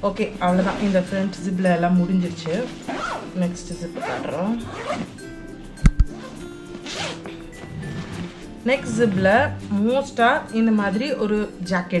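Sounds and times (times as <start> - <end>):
quiet background music: 0.0 - 12.0
zipper being pulled open: 2.6 - 3.4, 4.0 - 5.2, 6.1 - 9.7.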